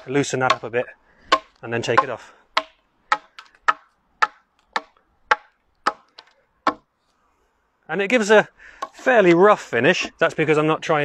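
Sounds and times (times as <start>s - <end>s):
axe chopping wood: 0.0s - 6.9s, 8.8s - 9.1s.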